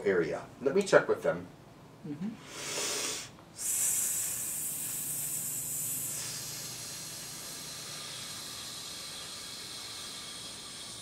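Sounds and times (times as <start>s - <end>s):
person exhaling: 2.4s - 11.0s.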